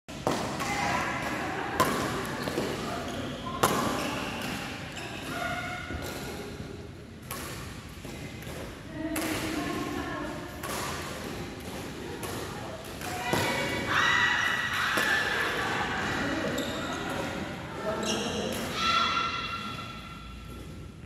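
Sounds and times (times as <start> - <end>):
rackets striking shuttlecock: 7.2 - 9.9, 10.6 - 13.8
players' voices: 8.8 - 20.1.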